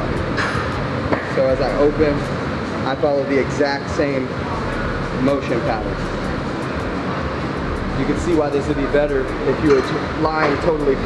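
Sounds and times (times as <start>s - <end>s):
low hum: 0.0s - 2.8s, 4.2s - 11.0s.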